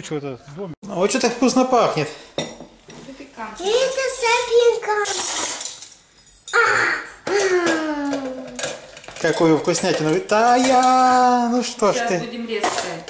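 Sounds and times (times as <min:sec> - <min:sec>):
child's high-pitched vocal sounds: 0:06.5 - 0:08.7.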